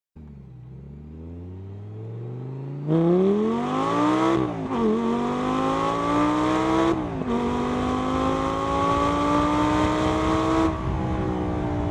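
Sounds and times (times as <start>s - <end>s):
car engine accelerating: 0.2s - 11.9s.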